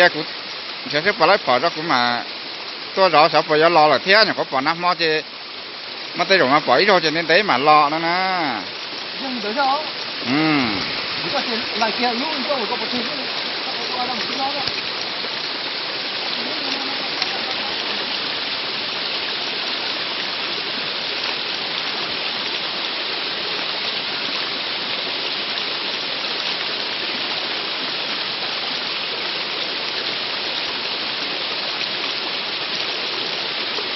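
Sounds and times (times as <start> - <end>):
water rushing: 0.0 - 33.9.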